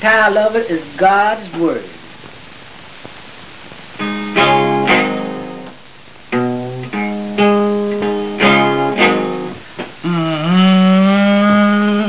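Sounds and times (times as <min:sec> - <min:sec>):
background hiss and hum: 0:00.0 - 0:12.0.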